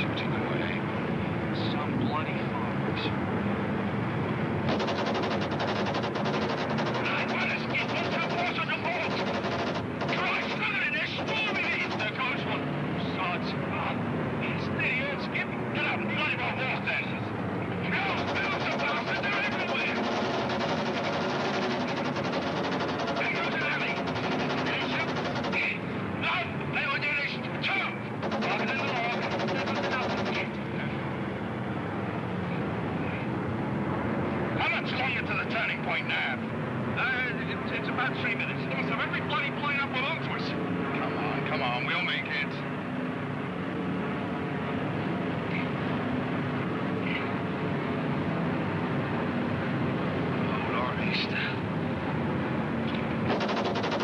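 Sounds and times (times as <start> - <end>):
aircraft engines droning: 0.0 - 54.0
rapid rattle: 4.7 - 12.2, 18.0 - 25.8, 28.2 - 30.6, 53.3 - 54.0
indistinct voices: 5.8 - 17.1, 17.8 - 22.3.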